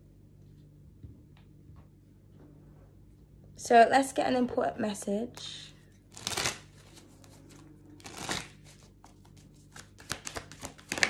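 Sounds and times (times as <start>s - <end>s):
cards being shuffled: 6.1s - 11.0s.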